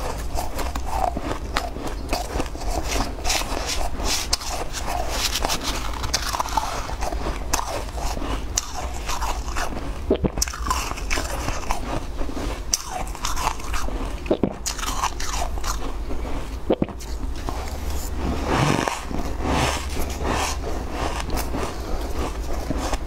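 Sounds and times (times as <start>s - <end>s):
ice crunching when chewed: 0.0s - 23.0s.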